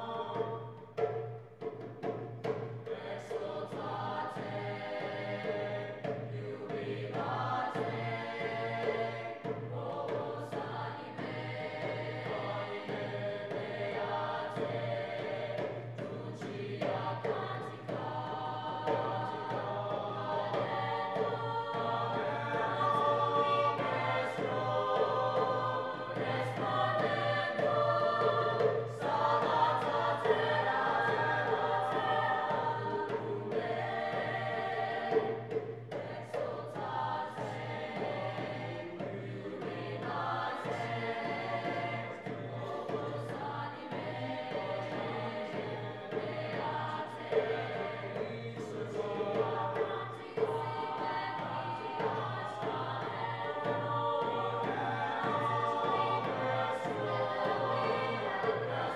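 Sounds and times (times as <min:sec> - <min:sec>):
choir singing: 0:00.0 - 0:58.9
hand drum rhythm: 0:00.0 - 0:58.9.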